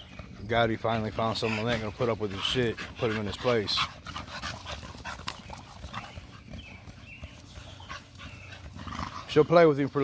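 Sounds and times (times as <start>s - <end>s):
dogs growling: 0.0s - 10.0s
dogs scuffling: 0.0s - 10.0s.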